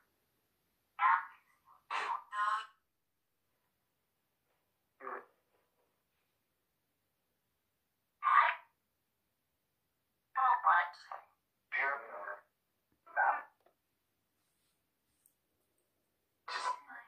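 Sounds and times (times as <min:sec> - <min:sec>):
garbled voice-like bursts from phone: 0:08.2 - 0:08.8, 0:16.5 - 0:17.0.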